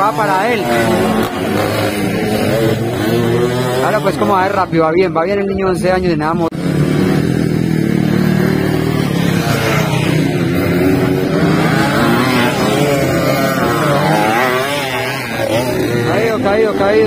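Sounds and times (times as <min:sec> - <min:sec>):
dirt bike engines revving: 0:00.0 - 0:17.0.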